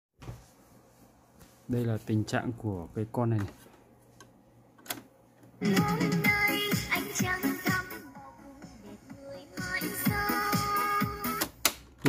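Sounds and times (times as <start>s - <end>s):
music from boombox speakers: 5.6s - 11.4s.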